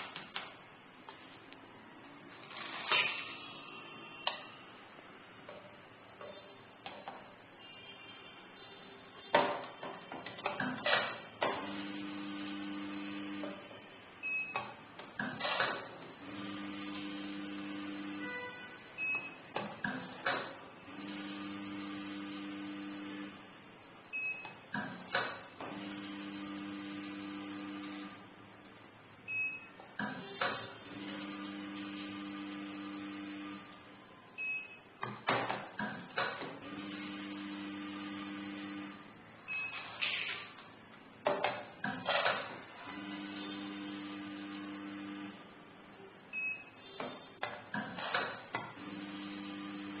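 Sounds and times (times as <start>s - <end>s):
machine feeder humming: 16.2s - 18.4s, 20.9s - 23.5s, 25.6s - 28.4s, 30.0s - 34.0s, 35.8s - 39.2s, 42.7s - 45.6s, 48.7s - 50.0s.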